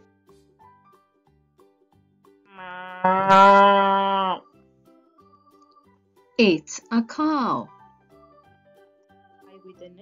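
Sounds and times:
faint background music: 0.0s - 10.0s
cow mooing: 2.5s - 4.4s.

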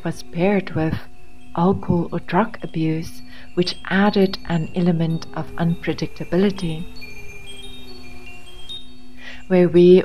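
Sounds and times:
high chime tones: 0.0s - 10.0s
low steady drone: 0.0s - 10.0s.

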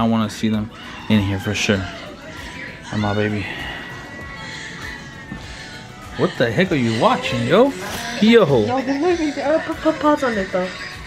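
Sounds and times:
faint tv music: 0.0s - 11.0s.

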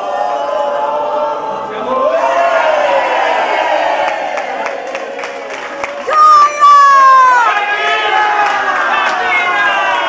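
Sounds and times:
crowd cheering and shouting: 0.0s - 10.0s
rhythmic clapping: 4.0s - 10.0s.

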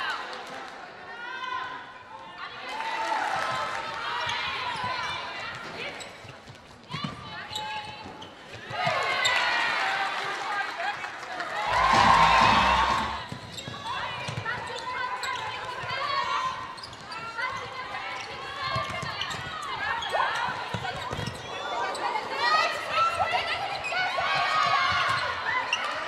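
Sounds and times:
players shouting calls: 11.7s - 13.4s.

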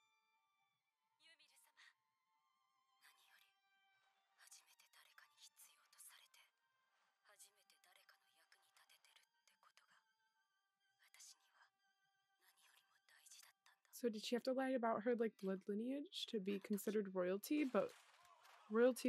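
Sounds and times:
soft background music: 0.0s - 19.0s.

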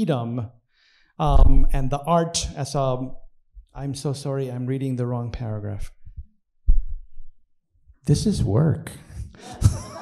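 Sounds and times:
dull low thumps: 1.3s - 3.9s, 5.7s - 8.6s.

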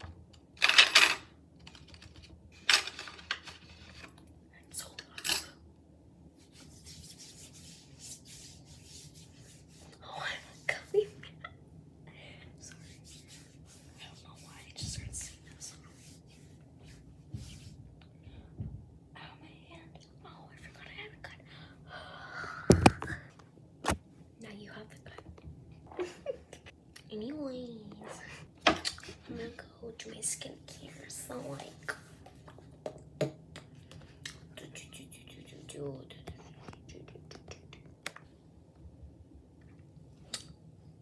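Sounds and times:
girl whispering softly: 34.5s - 37.8s.

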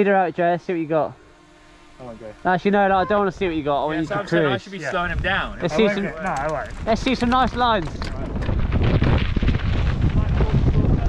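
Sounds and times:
mountain bike rumbling and rattling: 4.9s - 11.0s
wind on camera microphone: 4.9s - 11.0s.

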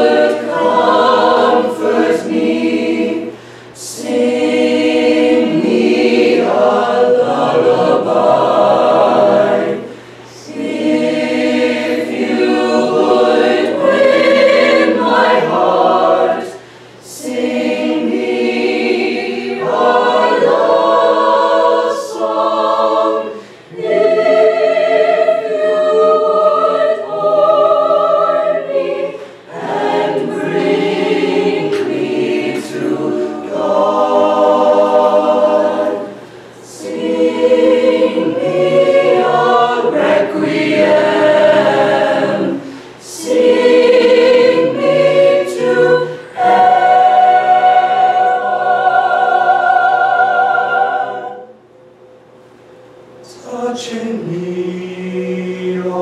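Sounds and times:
choir singing unaccompanied: 0.0s - 51.7s, 53.2s - 56.0s.

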